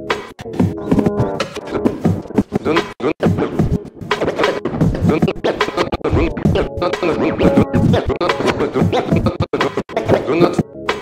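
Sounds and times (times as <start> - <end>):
turntable scratching: 0.0 - 11.0.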